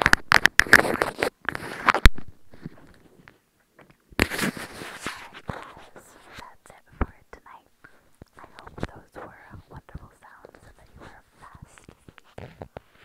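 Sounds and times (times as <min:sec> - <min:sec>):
breathy whisper-like noises: 0:04.8 - 0:13.0.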